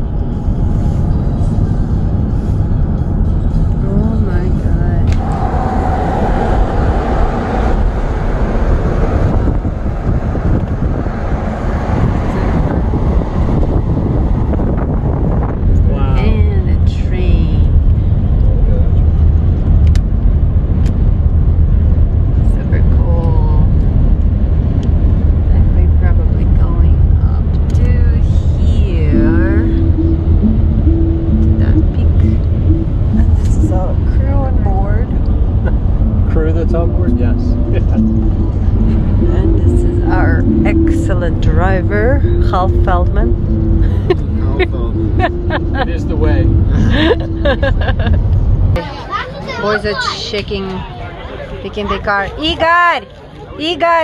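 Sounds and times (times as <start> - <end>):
road and engine rumble inside vehicle: 0.0 - 54.0.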